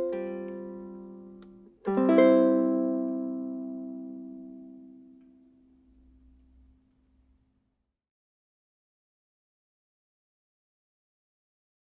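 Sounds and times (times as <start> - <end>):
ukulele notes ringing out: 0.0 - 5.9.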